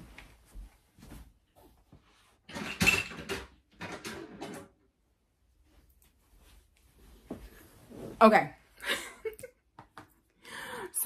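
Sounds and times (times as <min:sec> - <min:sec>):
knocks clatter and rustling: 0:02.5 - 0:04.8.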